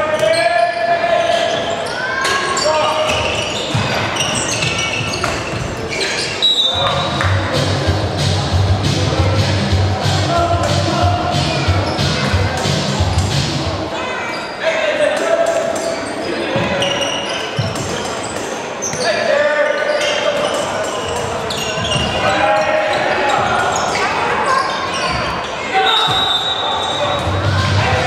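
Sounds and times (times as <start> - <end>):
ball bouncing on wooden floor: 4.6 - 5.7
referee's whistle: 6.4 - 7.2, 25.8 - 27.3
players shouting: 18.9 - 28.0.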